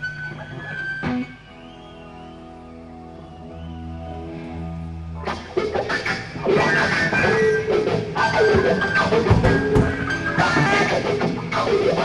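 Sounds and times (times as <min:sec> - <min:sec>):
electric guitar notes: 0:00.0 - 0:12.0.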